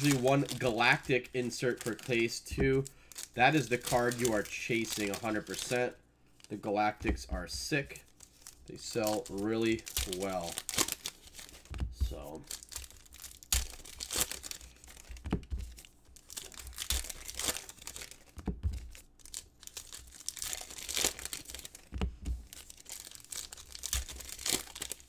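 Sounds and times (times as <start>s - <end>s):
foil wrappers tearing and crinkling: 0.0s - 25.0s.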